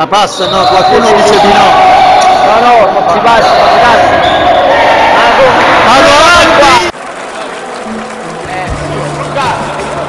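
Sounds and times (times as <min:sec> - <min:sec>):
steady tone: 0:00.3 - 0:05.9.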